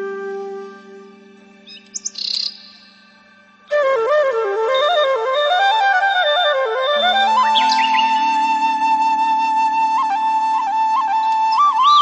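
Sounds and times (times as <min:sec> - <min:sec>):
faint musical drone: 0:00.0 - 0:12.0
small bird chirping: 0:01.6 - 0:03.1, 0:07.4 - 0:08.4.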